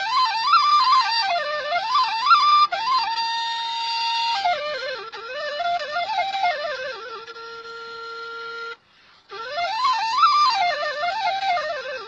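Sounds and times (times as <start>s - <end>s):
flute holding a note: 0.0s - 12.0s.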